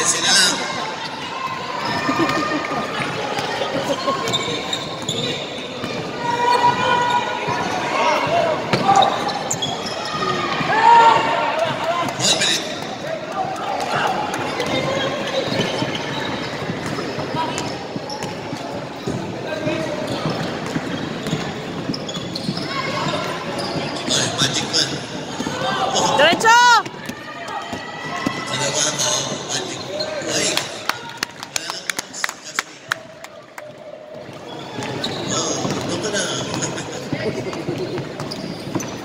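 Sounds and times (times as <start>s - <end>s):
people shouting: 9.9s - 12.0s, 25.4s - 28.9s.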